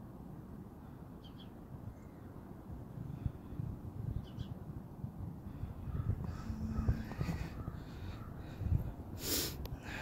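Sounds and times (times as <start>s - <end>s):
faint bird calls: 5.5s - 8.6s.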